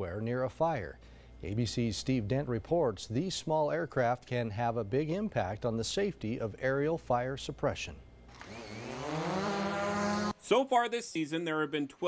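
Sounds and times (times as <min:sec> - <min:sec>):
drone motors buzzing: 0:08.3 - 0:10.4.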